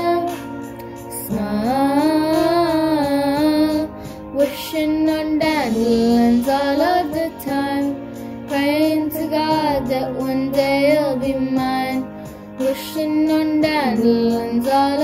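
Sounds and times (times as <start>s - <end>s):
girl singing a pop ballad: 0.0s - 15.0s.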